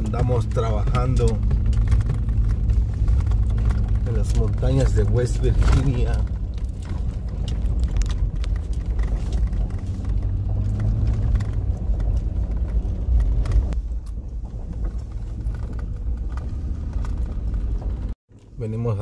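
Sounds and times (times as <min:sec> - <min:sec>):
road rumble inside vehicle: 0:00.0 - 0:19.0.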